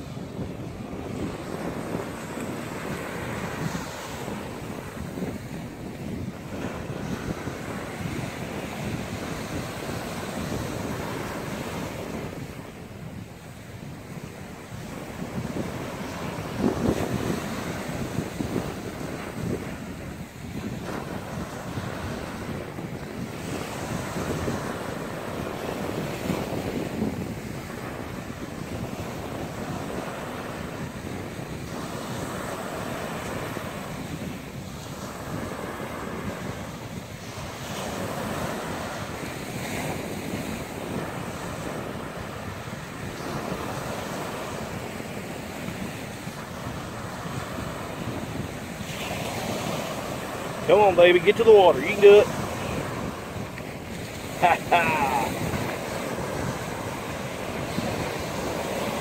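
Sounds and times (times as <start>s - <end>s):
surf washing onto beach: 0.0s - 59.0s
wind on microphone: 0.0s - 59.0s.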